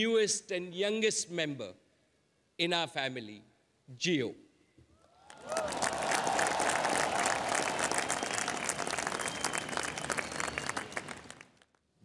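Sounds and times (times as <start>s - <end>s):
large audience applauding: 5.2s - 11.8s.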